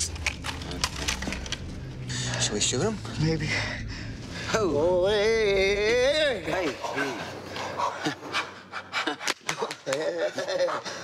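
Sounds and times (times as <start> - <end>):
steady low hum: 0.0 - 9.4.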